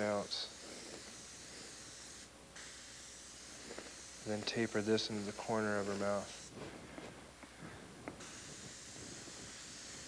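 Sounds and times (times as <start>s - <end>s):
airbrush spraying hiss: 0.0s - 6.6s, 8.1s - 10.0s.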